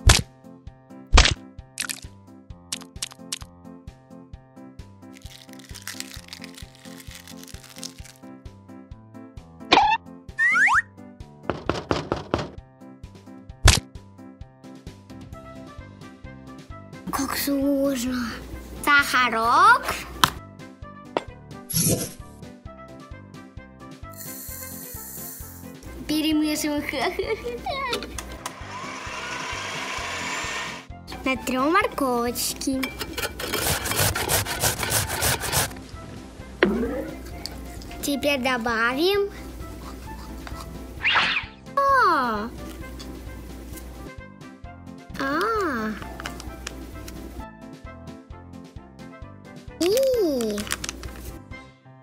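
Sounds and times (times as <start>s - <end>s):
playful background music: 0.0s - 52.0s
immersion blender whirring: 28.2s - 30.9s
falling whistle glide: 28.4s - 30.9s, 41.0s - 41.6s.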